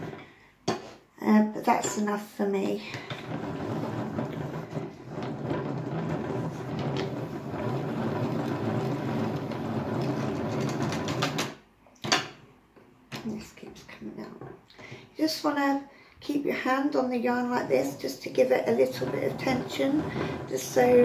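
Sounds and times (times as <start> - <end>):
yarn winder whirring: 2.9 - 11.6, 17.7 - 21.0.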